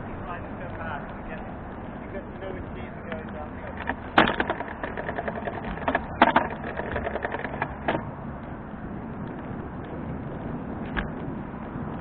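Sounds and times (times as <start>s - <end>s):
bicycle rattling: 0.0s - 12.0s
clicks and knocks: 3.2s - 8.1s.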